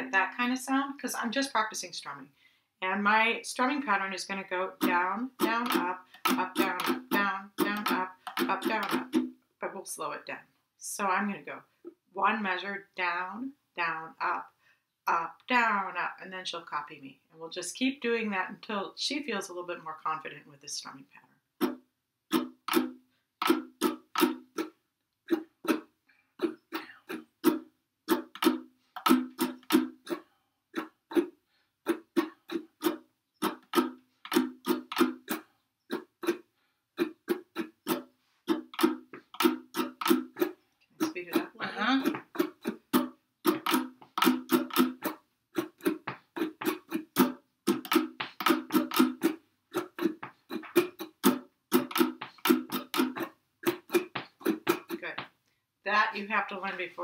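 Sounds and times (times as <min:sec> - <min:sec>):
ukuleles strumming: 0:04.8 - 0:09.3, 0:21.6 - 0:24.7, 0:25.3 - 0:30.2, 0:31.9 - 0:36.4, 0:37.0 - 0:55.1.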